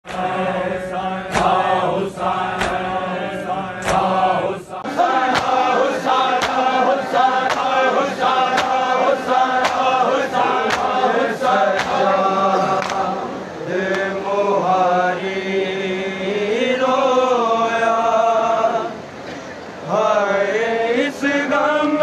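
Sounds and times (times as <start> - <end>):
men chanting in chorus: 0.0 - 19.1, 19.8 - 22.0
hands slapping chests: 1.3 - 1.6, 2.6 - 2.9, 3.8 - 4.1, 10.7 - 11.0, 11.7 - 12.0, 12.8 - 13.0.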